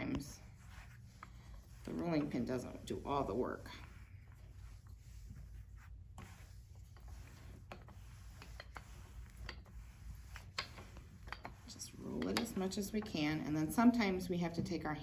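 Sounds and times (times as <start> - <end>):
rolling pin rolling dough: 0.0 - 14.8
low steady hum: 0.0 - 15.0.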